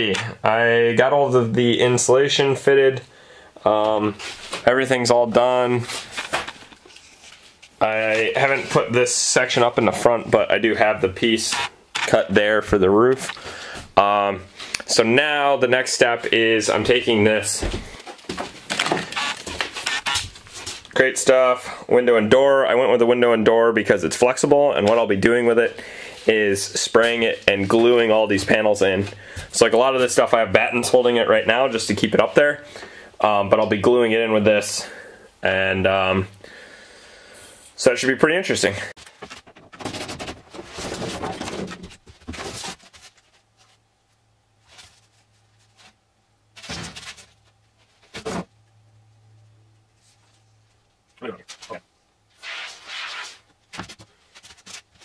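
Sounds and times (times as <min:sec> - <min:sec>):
rustling and scraping: 0:03.9 - 0:04.8, 0:05.4 - 0:10.3, 0:16.2 - 0:21.0, 0:39.0 - 0:48.6, 0:49.9 - 0:55.0.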